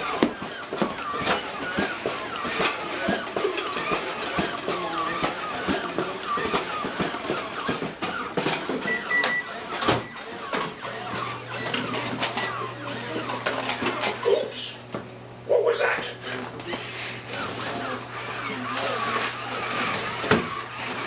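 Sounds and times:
toy robot motors whirring and clicking: 0.0s - 14.4s, 17.3s - 21.0s.

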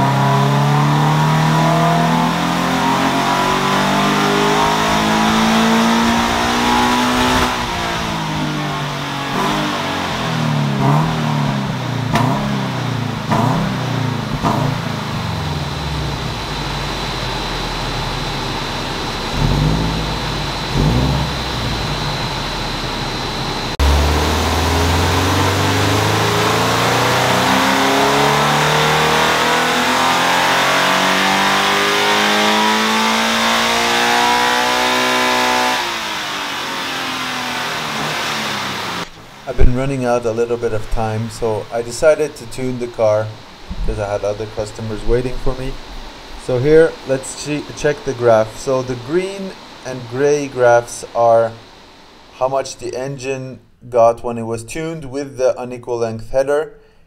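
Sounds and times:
car engine revving on dyno: 0.0s - 52.5s.

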